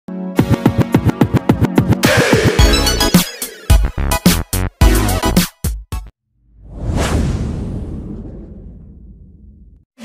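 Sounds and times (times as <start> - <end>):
whoosh sound effect: 6.6 - 9.0
deep low tail: 6.6 - 9.8.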